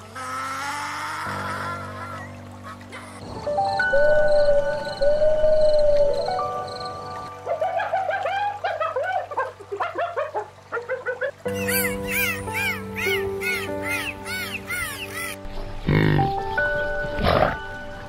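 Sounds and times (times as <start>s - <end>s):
background music: 0.3s - 18.0s
dolphins whistling: 7.4s - 16.2s
chattering bird-like calls: 11.5s - 17.6s.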